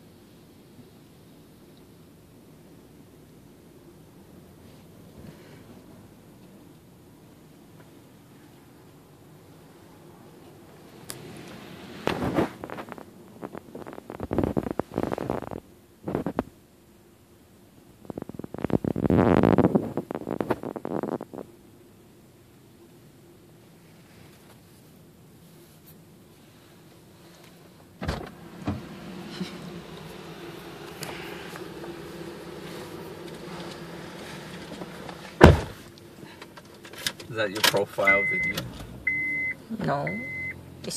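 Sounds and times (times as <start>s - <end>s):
steady low hum: 0.0s - 40.9s
rustling on phone microphone: 10.9s - 16.6s, 18.0s - 21.5s, 23.7s - 36.0s
thump in car seat: 28.0s - 29.0s, 35.2s - 35.8s.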